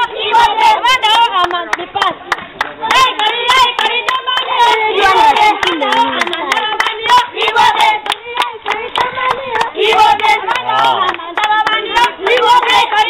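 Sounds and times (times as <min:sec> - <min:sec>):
voices singing and calling: 0:00.0 - 0:13.0
hands clapping: 0:01.2 - 0:13.0.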